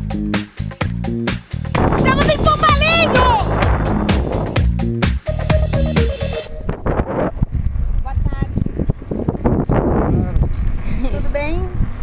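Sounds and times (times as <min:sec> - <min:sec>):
background music: 0:00.0 - 0:06.8
wind buffeting microphone: 0:01.7 - 0:04.8, 0:06.5 - 0:12.0.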